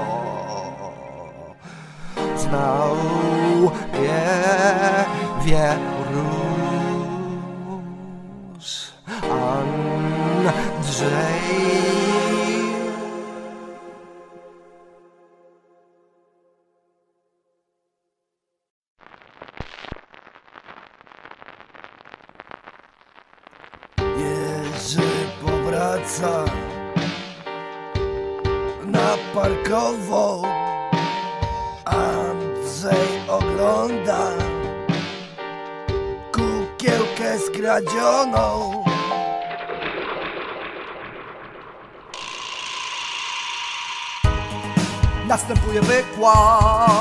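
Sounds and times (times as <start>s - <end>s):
dense crackling pops and clicks: 19.0s - 28.7s, 36.4s - 43.2s
rattling ratchet sound effect: 42.1s - 44.4s.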